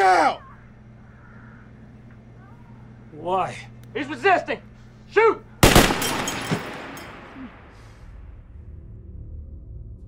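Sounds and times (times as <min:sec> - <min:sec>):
pistol shot ringing: 0:05.6 - 0:07.8.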